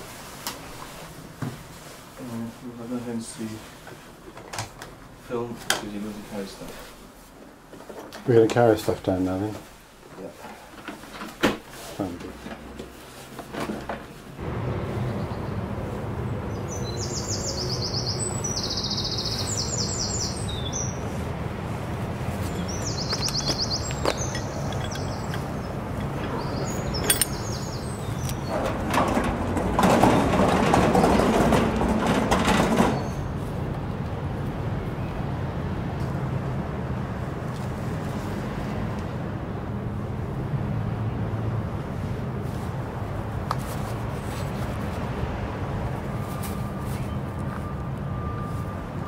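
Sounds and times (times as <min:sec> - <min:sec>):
songbirds chirping trills: 0:14.5 - 0:29.2.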